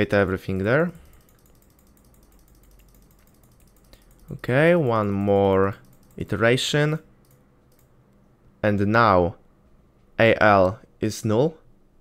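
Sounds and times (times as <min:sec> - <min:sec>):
computer keyboard key presses: 0:01.0 - 0:04.4.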